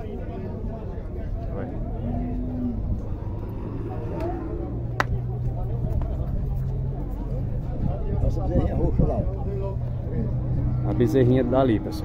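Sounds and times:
faint distant voices: 0.0 - 12.0
low rumble: 1.2 - 11.0.

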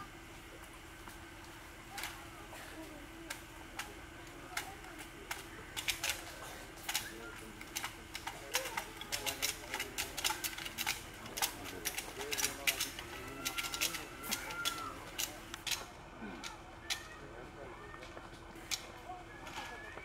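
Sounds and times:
murmur of voices: 0.0 - 20.0
sharp clicks and taps: 6.8 - 17.1.

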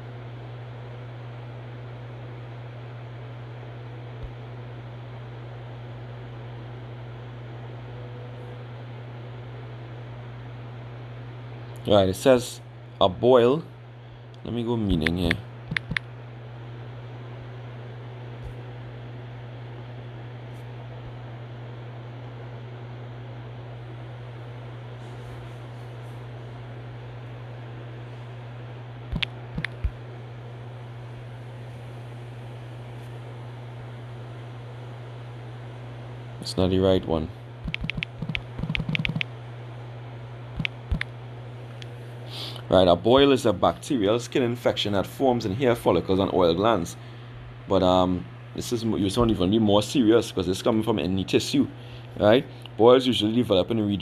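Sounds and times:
low hum: 26.5 - 35.8.

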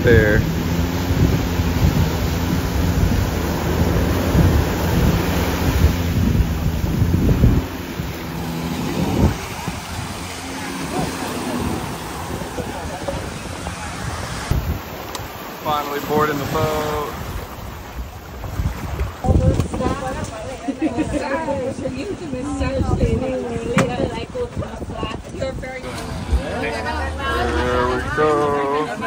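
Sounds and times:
small waves washing on sand: 0.0 - 29.0
wind buffeting microphone: 0.0 - 29.0.

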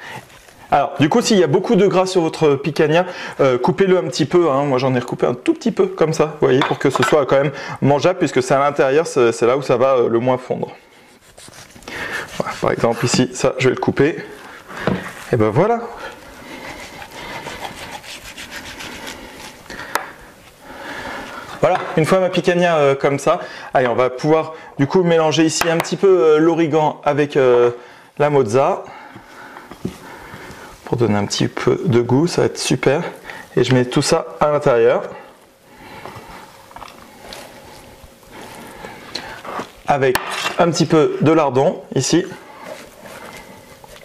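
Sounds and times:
soft handling of food: 10.8 - 22.4, 29.2 - 41.0, 42.0 - 44.0
knife slicing on wooden cutting board: 16.8 - 19.6.

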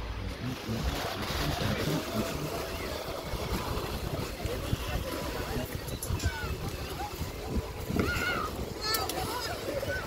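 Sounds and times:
distant voices: 0.0 - 10.0
waves washing on pebbles: 0.0 - 10.0
wind on microphone: 0.0 - 10.0.

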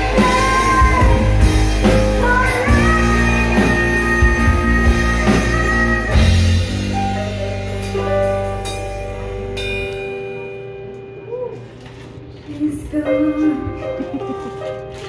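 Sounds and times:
rock band playing a power ballad: 0.0 - 11.0.

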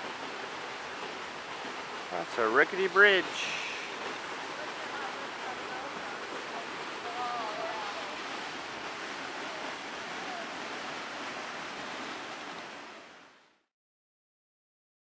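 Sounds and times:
waterfall rushing: 0.0 - 13.4.

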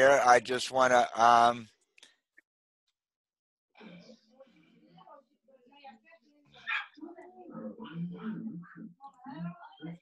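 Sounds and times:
voices: 3.8 - 10.0
dog barking: 6.6 - 7.0.

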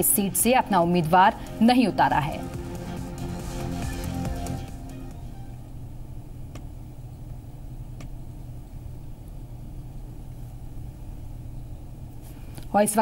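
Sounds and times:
low hum: 0.0 - 12.7.

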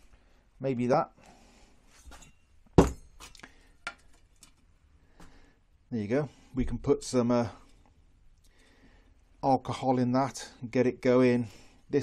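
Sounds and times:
sharp metallic knock: 2.8 - 3.2.

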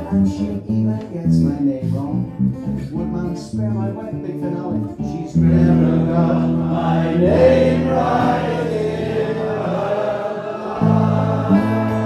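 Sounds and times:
electric bass: 0.0 - 8.5, 10.8 - 12.0
acoustic guitar: 0.0 - 12.0
singers holding a note: 5.3 - 12.0
audience singing along: 5.4 - 12.0.

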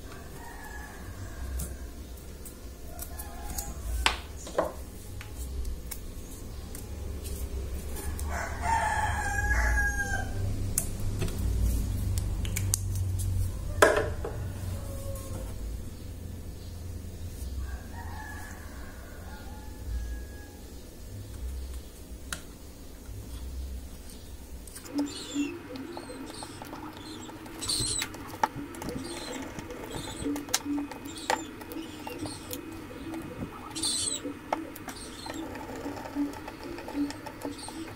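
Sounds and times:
rooster crowing: 0.0 - 2.0, 2.8 - 4.4, 7.9 - 10.5, 13.4 - 15.6, 17.6 - 20.9, 24.9 - 37.9
sped-up plastic clicks: 24.8 - 37.9
high chirpy squeaks: 24.9 - 37.9.

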